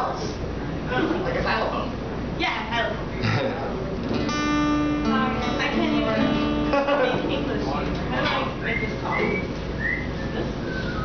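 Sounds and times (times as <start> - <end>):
murmur of room noise: 0.0 - 11.0
short whistled notes: 8.7 - 11.0.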